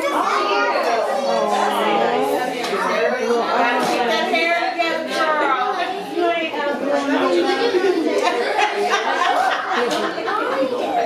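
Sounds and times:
voices talking and exclaiming: 0.0 - 11.0.

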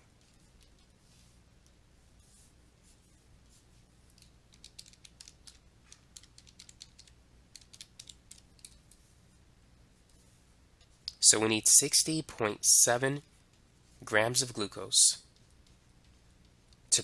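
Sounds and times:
faint steady hum: 0.0 - 17.0
calculator keys clicking: 4.2 - 8.8.

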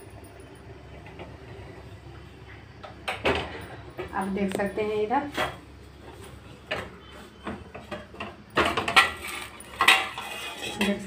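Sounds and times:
metal pot and lid clanking: 7.9 - 11.0.

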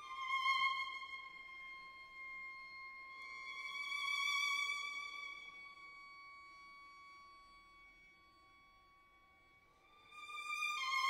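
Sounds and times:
bayan violin and cello playing: 0.0 - 9.3.

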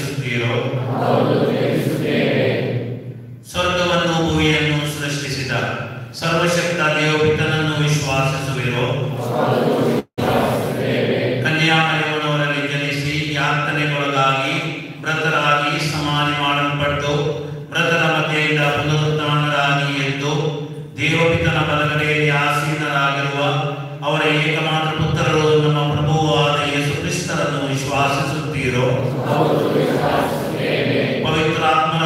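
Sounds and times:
hymn singing: 0.0 - 32.0.

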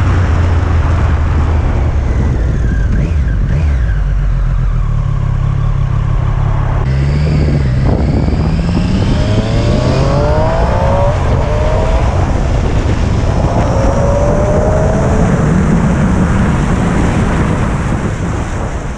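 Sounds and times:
wind rushing over microphone: 0.0 - 4.2, 5.7 - 18.9
motorcycle engine accelerating: 0.0 - 18.9.

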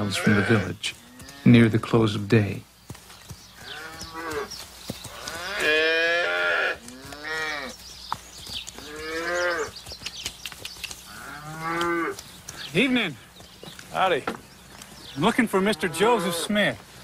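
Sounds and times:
cattle mooing: 5.2 - 7.7, 8.8 - 9.7, 11.1 - 12.2, 15.6 - 16.6.

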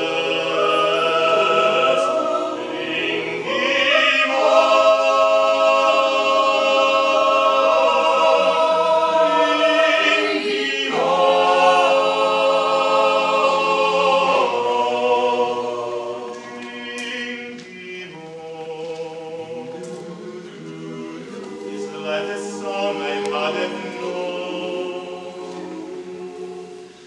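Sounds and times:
choir singing a cappella: 0.0 - 27.0.

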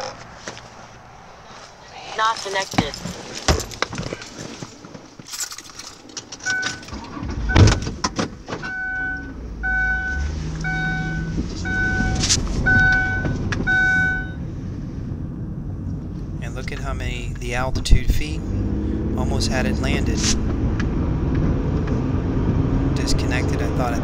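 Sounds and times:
vehicle engine starting and running: 2.6 - 24.0
electronic warning beep: 6.4 - 6.9, 7.5 - 7.9, 8.7 - 14.4.

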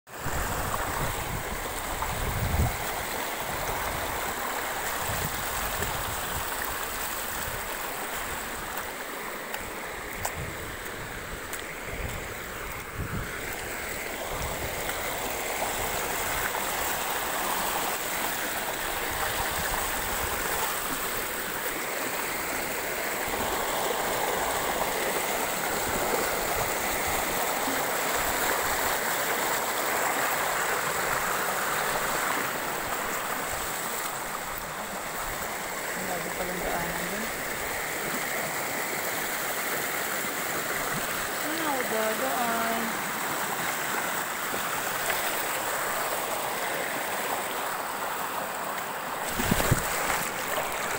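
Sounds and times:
river water rushing over rocks: 0.1 - 50.9.

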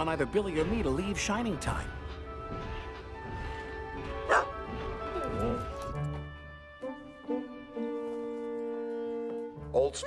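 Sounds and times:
orchestral film score: 0.0 - 10.0
dog barking: 4.3 - 4.6.

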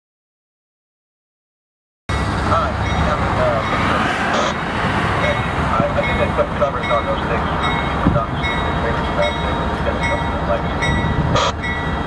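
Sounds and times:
locomotive engine rumble: 2.1 - 12.0
train track noise: 2.1 - 12.0.

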